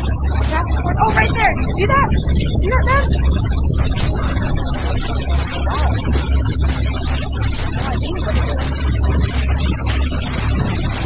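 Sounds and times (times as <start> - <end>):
steady low rumble: 0.0 - 11.0
people talking and exclaiming: 0.3 - 9.5.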